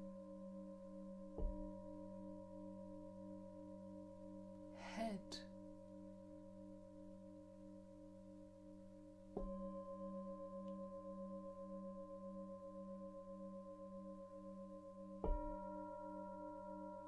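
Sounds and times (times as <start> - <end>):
singing bowl ringing: 9.4 - 17.0.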